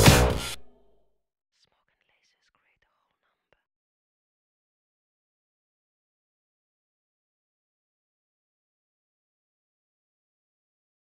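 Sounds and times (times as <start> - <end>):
whispering voice: 1.6 - 3.7.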